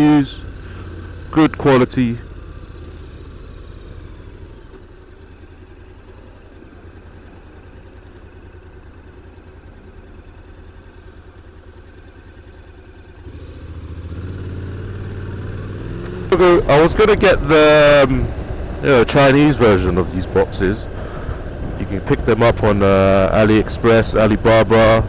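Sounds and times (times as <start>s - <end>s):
motorcycle engine running: 0.0s - 25.0s.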